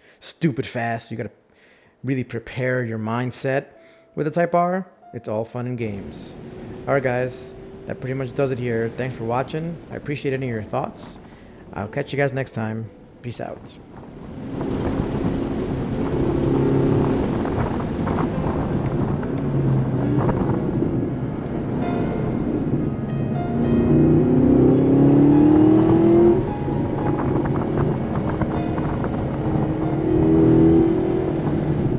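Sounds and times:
car engine accelerating: 5.8s - 11.8s, 14.2s - 31.9s.

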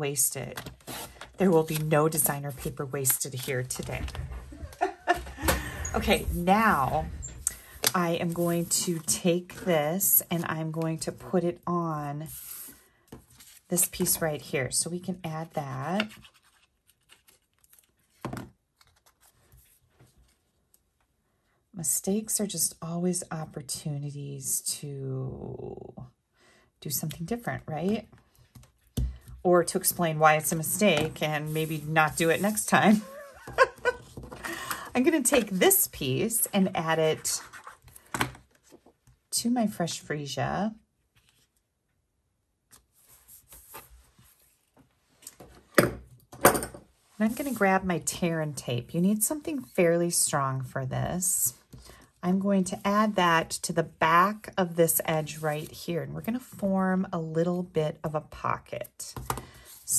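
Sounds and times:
paper rustling and scratching: 6.0s - 9.7s, 15.8s - 20.5s, 30.4s - 34.4s, 35.0s - 38.9s, 42.7s - 45.5s.

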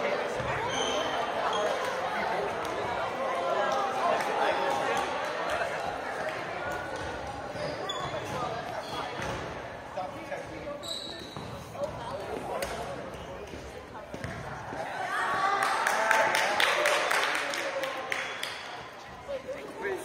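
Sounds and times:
players' voices chattering: 0.0s - 20.0s
sneakers squeaking on hardwood: 0.3s - 1.9s, 7.5s - 9.5s, 10.4s - 14.8s.

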